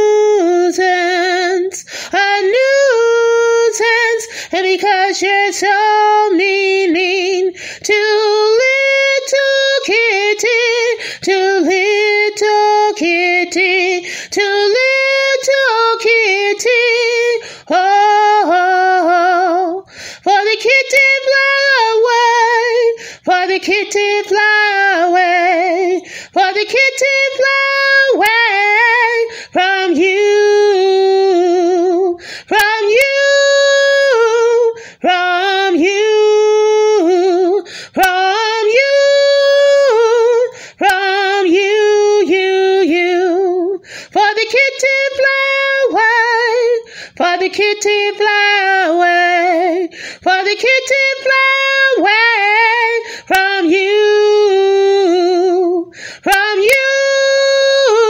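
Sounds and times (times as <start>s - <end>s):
woman singing unaccompanied: 0.0s - 58.0s
singer breathing in: 1.8s - 2.2s, 4.3s - 4.5s, 7.6s - 7.8s, 11.0s - 11.2s, 14.0s - 14.3s, 17.4s - 17.7s, 19.9s - 20.3s, 23.0s - 23.3s, 26.0s - 26.4s, 29.3s - 29.6s, 32.2s - 32.5s, 34.8s - 35.0s, 37.6s - 38.0s, 40.5s - 40.8s, 43.8s - 44.2s, 46.8s - 47.2s, 49.9s - 50.2s, 53.0s - 53.3s, 55.9s - 56.3s.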